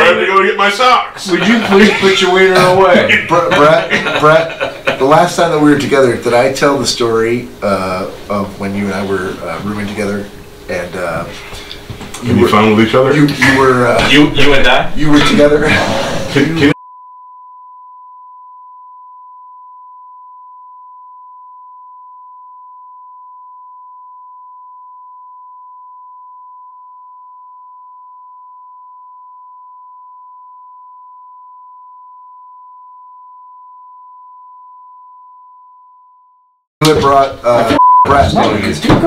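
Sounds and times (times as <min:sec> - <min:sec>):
burst of laughter: 0:02.9 - 0:05.0
high-pitched censor beep: 0:37.8 - 0:38.1.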